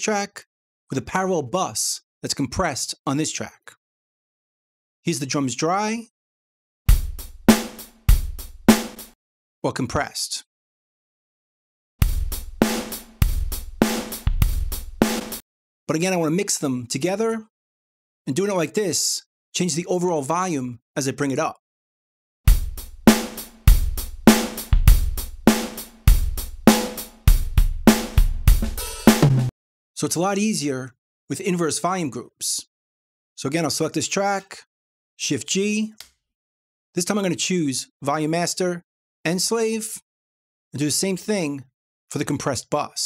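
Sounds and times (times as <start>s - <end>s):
kick and snare backbeat: 6.9s - 9.1s, 12.0s - 15.4s, 22.5s - 29.5s
drum kit groove: 6.9s - 9.2s, 12.0s - 15.4s, 22.5s - 29.5s.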